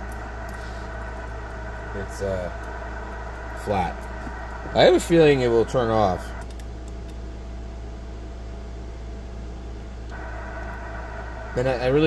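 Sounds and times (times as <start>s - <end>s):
radio receiver hiss: 0.0s - 6.6s, 10.1s - 12.0s
steady low hum: 0.0s - 12.0s.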